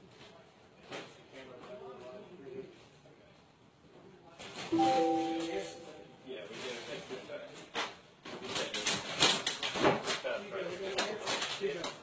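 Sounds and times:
electronic tone: 4.8s - 6.2s.

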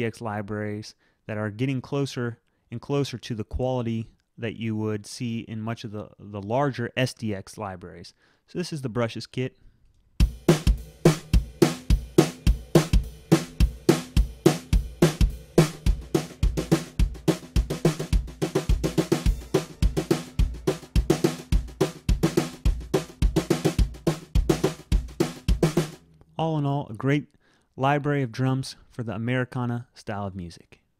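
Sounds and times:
kick drum: 10.2s - 25.9s
brushes on snare and cymbals: 10.2s - 26.1s.

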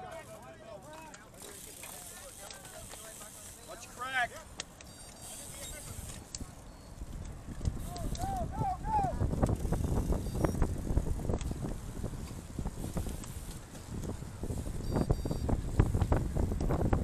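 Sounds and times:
riders calling out: 0.0s - 11.2s
wind rumble on microphone: 6.3s - 17.0s.

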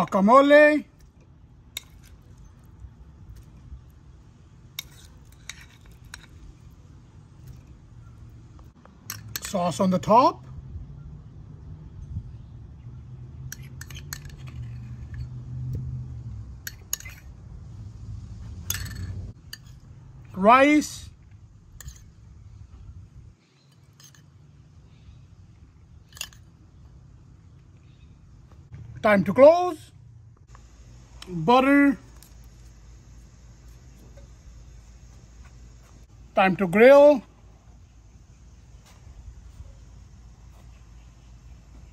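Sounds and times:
spoon scraping sauce: 4.8s - 6.6s
low hum: 10.4s - 20.4s, 21.0s - 41.9s
metal spoon clinking ceramic bowl: 16.7s - 17.2s.

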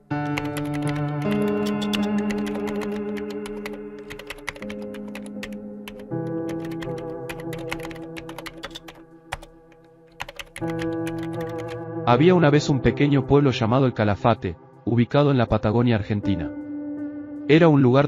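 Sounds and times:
background music of sustained chords: 0.0s - 18.0s
computer keyboard typing: 0.2s - 11.8s.

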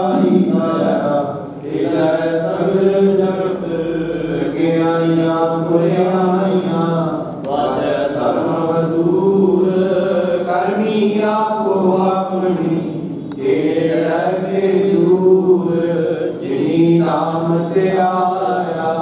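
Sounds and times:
hymn chanting: 0.0s - 19.0s.

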